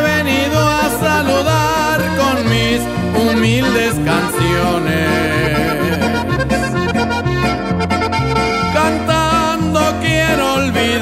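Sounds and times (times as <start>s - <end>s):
accordion melody: 0.0s - 11.0s
guitar: 0.0s - 11.0s
stepping bass accompaniment: 0.0s - 11.0s.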